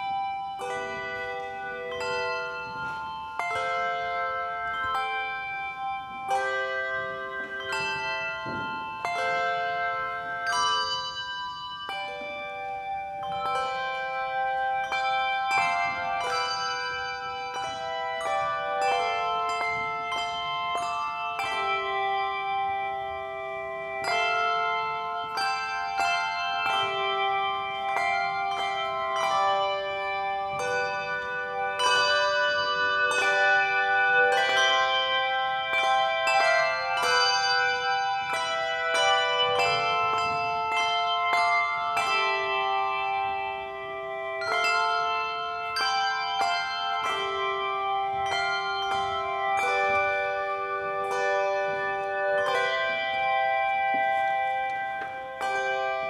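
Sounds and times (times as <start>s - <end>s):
handbell choir ringing: 0.0s - 56.0s.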